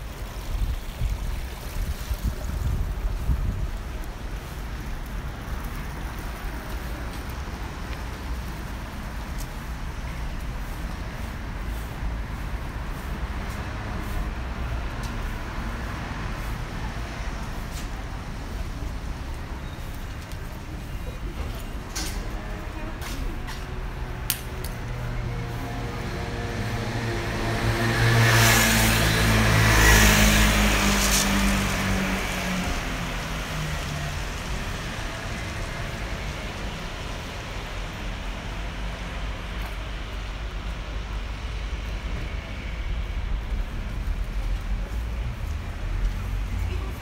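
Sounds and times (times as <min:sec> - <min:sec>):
background traffic: 0:00.0 - 0:47.0
car passing close by: 0:25.1 - 0:37.1.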